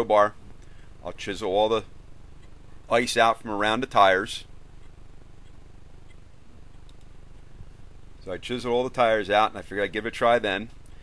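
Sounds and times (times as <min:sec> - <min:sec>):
faint background noise: 0:00.0 - 0:11.0
steady low hum: 0:00.0 - 0:11.0.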